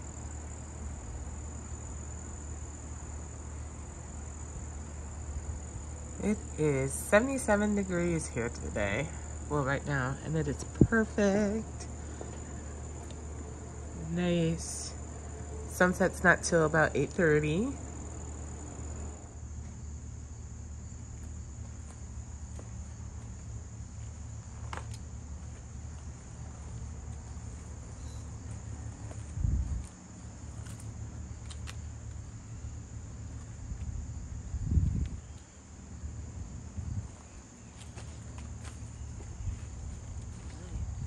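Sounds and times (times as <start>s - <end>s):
insects chirring: 0.0s - 41.0s.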